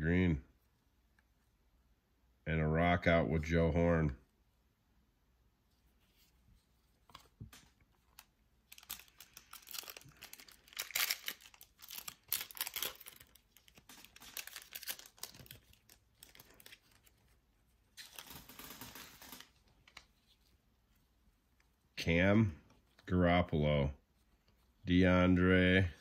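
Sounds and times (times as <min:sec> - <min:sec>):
foil wrapper tearing and crinkling: 0:08.2 - 0:17.1, 0:17.9 - 0:20.0.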